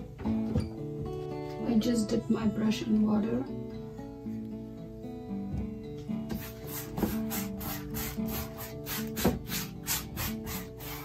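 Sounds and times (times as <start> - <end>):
acoustic guitar music: 0.0 - 11.0
paintbrush swishing on canvas: 6.3 - 11.0.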